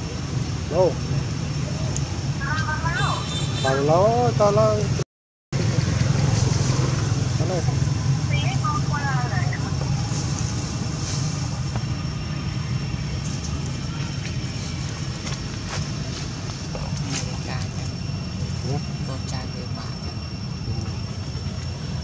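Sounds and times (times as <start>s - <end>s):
low engine-like rumble: 0.0s - 5.0s, 5.6s - 22.0s
faint high whine: 7.0s - 22.0s.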